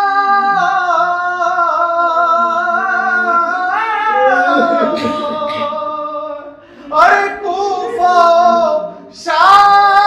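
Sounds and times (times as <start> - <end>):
high voice singing a lament: 0.0 - 10.0.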